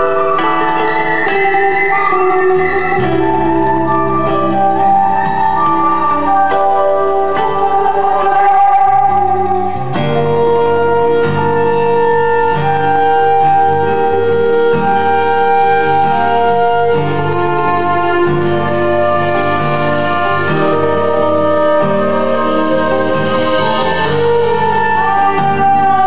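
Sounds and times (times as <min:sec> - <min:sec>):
fiddle melody: 0:00.0 - 0:26.0
strummed acoustic guitar: 0:00.0 - 0:26.0.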